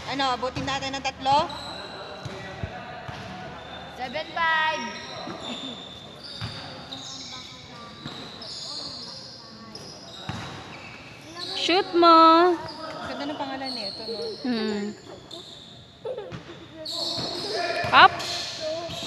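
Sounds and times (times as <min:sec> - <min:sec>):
basketball bouncing on floor: 0:10.3 - 0:10.6.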